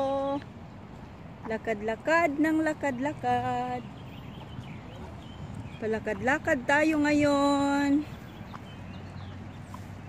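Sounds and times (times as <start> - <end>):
wind on microphone: 3.9 - 10.0.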